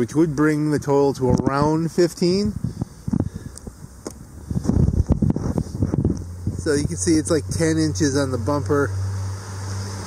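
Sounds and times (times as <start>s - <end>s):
wind buffeting microphone: 1.1s - 8.0s.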